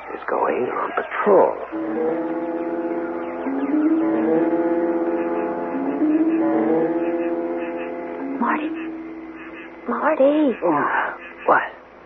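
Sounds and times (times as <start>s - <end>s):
slow sustained musical notes: 1.6s - 11.4s.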